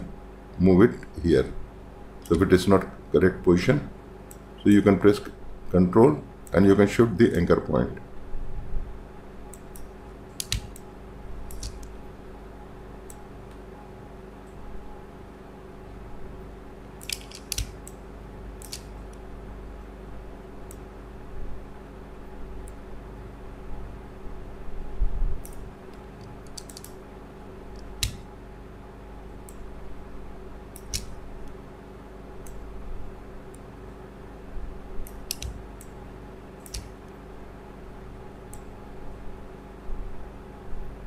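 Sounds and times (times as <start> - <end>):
faint steady hum: 0.0 - 41.0
mouse and keyboard clicks: 9.6 - 10.8, 11.5 - 11.9, 17.0 - 18.0, 18.6 - 19.0, 26.2 - 27.0, 30.8 - 31.2, 35.1 - 35.9, 36.6 - 37.0.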